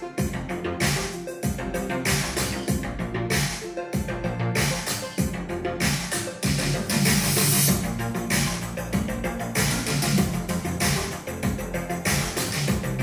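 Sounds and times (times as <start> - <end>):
instrumental music with strong bass: 0.0 - 13.0.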